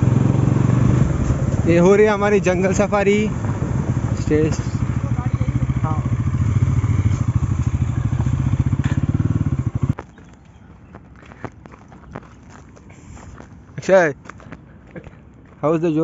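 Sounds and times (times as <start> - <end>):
motorcycle engine running: 0.0 - 10.6
light footsteps: 6.3 - 9.2, 9.8 - 16.0.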